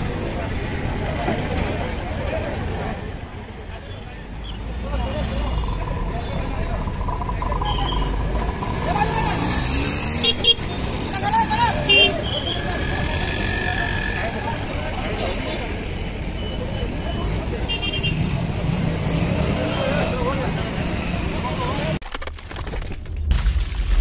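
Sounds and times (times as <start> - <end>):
voices talking: 0.0 - 22.0
street traffic: 0.0 - 22.1.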